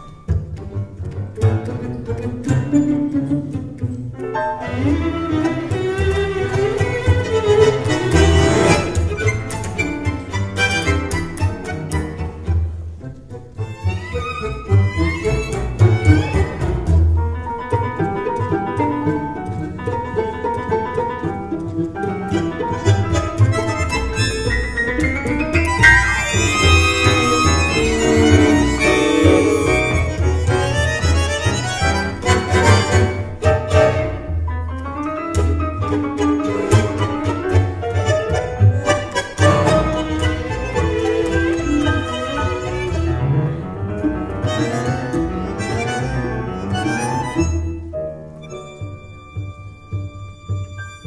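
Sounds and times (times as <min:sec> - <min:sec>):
tango orchestra playing: 0:00.0 - 0:51.0
bandoneon and violin lines: 0:04.6 - 0:16.6, 0:22.3 - 0:25.0, 0:25.6 - 0:34.2, 0:36.3 - 0:51.0
driving bass and piano pulse: 0:15.1 - 0:51.0.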